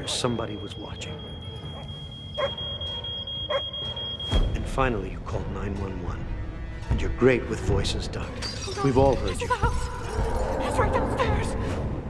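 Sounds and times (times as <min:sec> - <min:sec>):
smoke alarm tone: 0:00.0 - 0:04.5
dog barking: 0:01.6 - 0:04.1.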